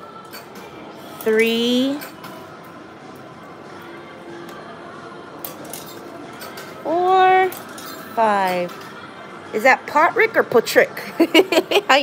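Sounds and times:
arcade background noise: 0.0 - 12.0
faint music: 0.0 - 12.0.

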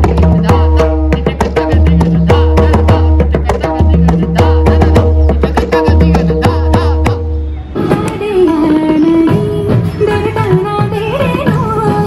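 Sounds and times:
barrel drum played by hand: 0.0 - 12.0.

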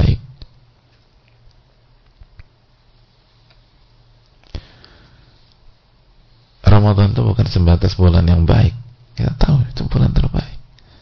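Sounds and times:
faint room hum: 0.0 - 11.0
soft clicks: 0.4 - 2.6.

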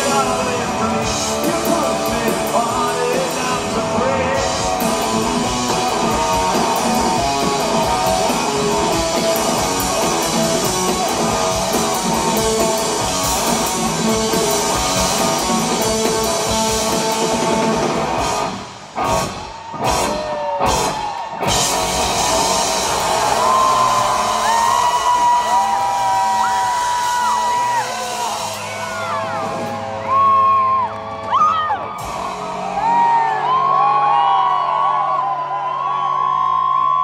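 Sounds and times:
rock band full-band hits: 0.0 - 36.2
crowd whooping and cheering: 0.0 - 37.0.

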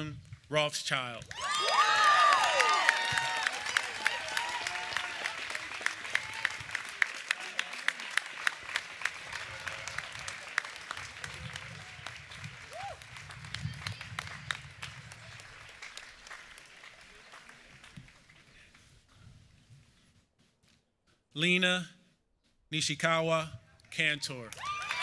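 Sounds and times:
audience applauding: 1.3 - 18.8, 24.2 - 25.0.

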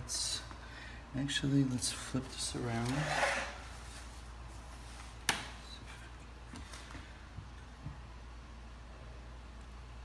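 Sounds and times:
clock sliding on stone: 2.8 - 3.6.

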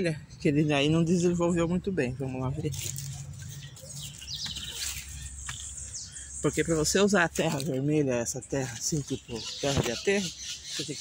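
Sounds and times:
bird chirping: 0.0 - 11.0
light rustling: 2.6 - 6.0
footsteps: 2.7 - 6.0.

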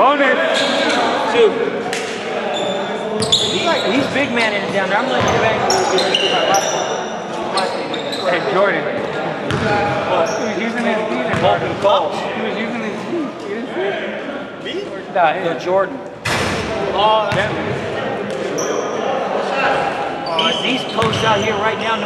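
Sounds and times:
players calling out and chattering: 0.0 - 22.0.

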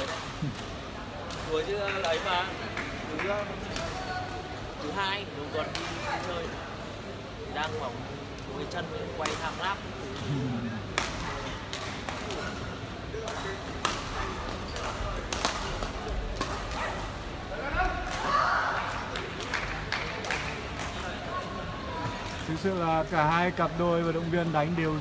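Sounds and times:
crowd voices: 0.0 - 25.0.

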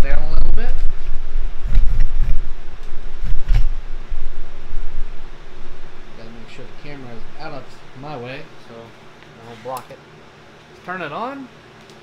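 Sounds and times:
camera handling thumps and rumbles: 3.3 - 3.8.

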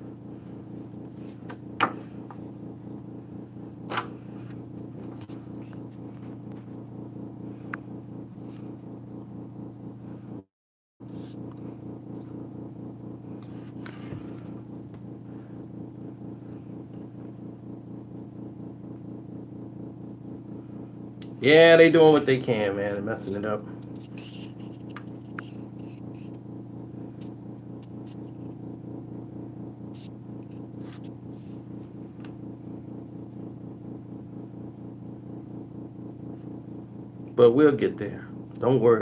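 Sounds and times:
low fluttering hum: 0.0 - 39.0.

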